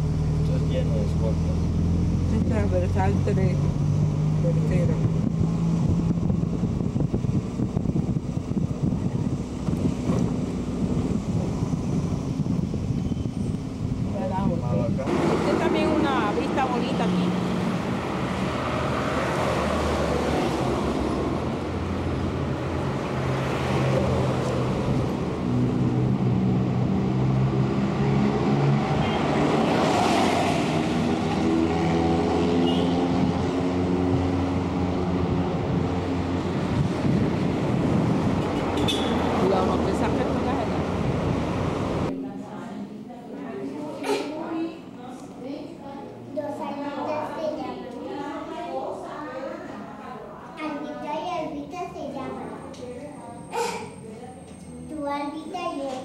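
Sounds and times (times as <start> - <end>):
car engine and road noise: 0.0 - 42.2, 50.1 - 56.0
outdoor background noise: 0.0 - 56.0.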